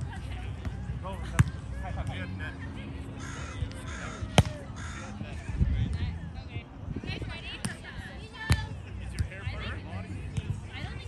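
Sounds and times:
crow cawing: 3.2s - 5.2s.

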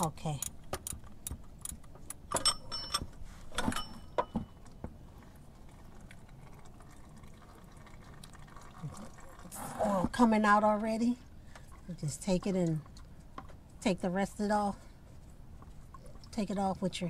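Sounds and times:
oil trickling into bucket: 4.6s - 9.6s.

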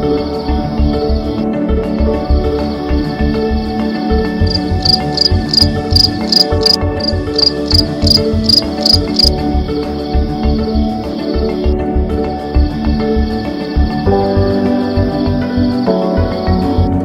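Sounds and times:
background music: 0.0s - 17.0s
cricket chirping: 4.3s - 9.4s.

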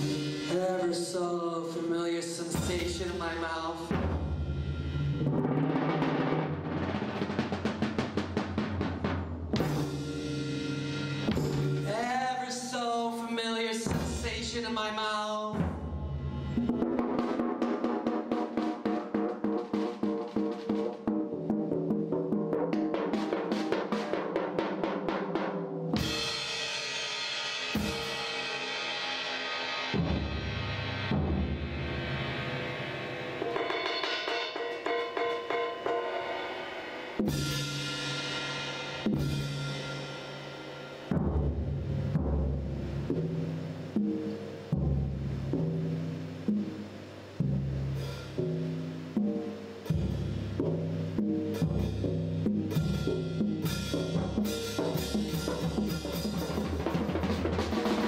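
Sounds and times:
ringing cymbal crash: 0.0s - 1.0s, 9.6s - 12.2s, 26.0s - 41.2s
drum strokes with mallets: 0.0s - 13.0s, 13.8s - 58.0s.

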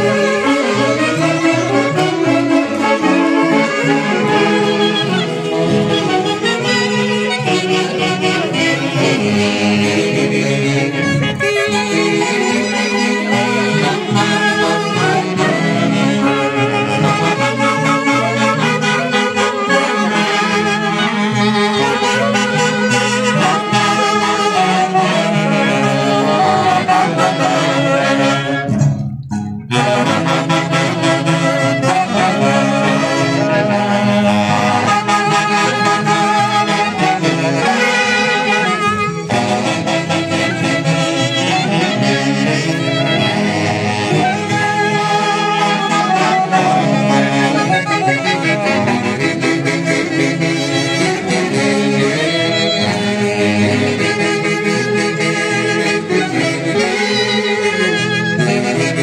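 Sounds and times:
folk orchestra dance tune: 0.0s - 59.0s.

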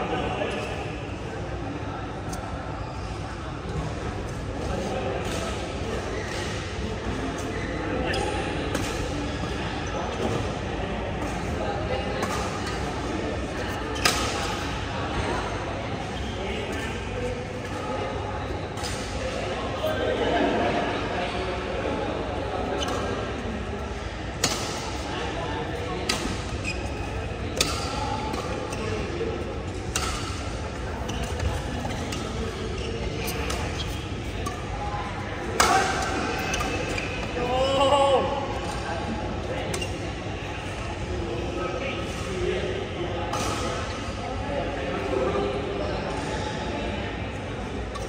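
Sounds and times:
background chatter: 0.0s - 48.0s.

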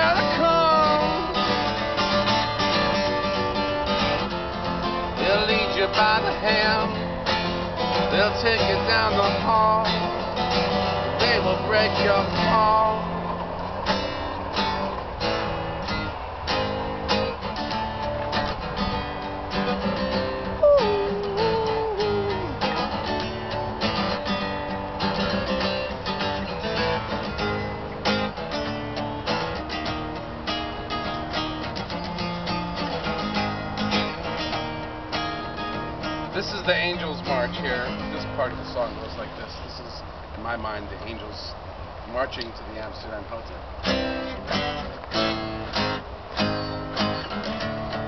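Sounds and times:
acoustic guitar strumming: 0.0s - 40.2s, 43.7s - 48.0s
tone sliding downward: 20.6s - 22.7s.

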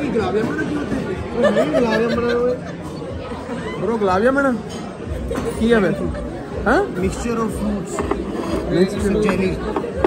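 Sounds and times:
people chattering and exclaiming: 0.0s - 10.0s.

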